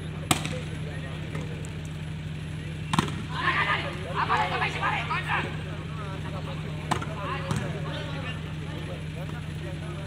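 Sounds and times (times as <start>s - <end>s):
volleyball slap: 0.3s - 0.7s, 2.9s - 3.4s, 6.8s - 7.8s
voices shouting: 2.7s - 9.2s.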